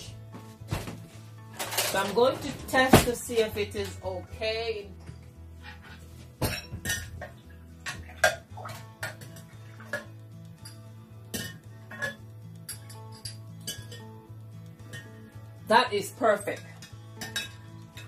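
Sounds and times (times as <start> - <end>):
soft background music with beat: 0.0 - 18.0
metal spoon clinking on glass jug: 10.6 - 14.2, 16.5 - 18.0.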